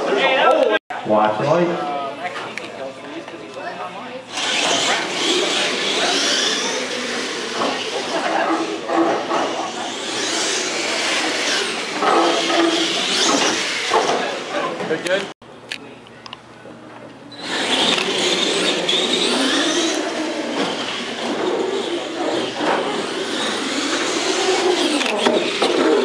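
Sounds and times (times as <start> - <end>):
onlookers' voices: 1.7 - 26.0
rc truck motors running: 4.3 - 15.3, 17.4 - 26.0.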